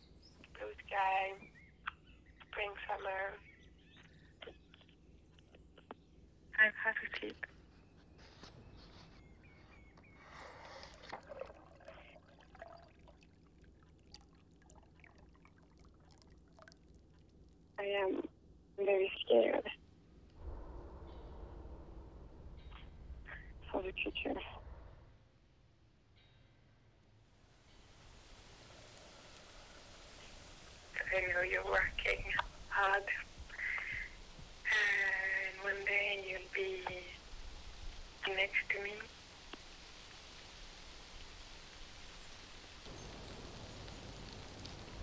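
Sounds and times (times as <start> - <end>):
liquid pouring into a mug: 11.0 - 13.4
person speaking over a phone line: 23.7 - 24.5, 31.0 - 34.1.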